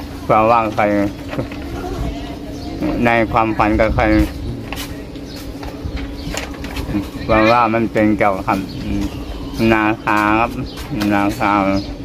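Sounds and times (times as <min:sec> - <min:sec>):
man speaking: 0:02.8 - 0:04.8, 0:06.9 - 0:11.9.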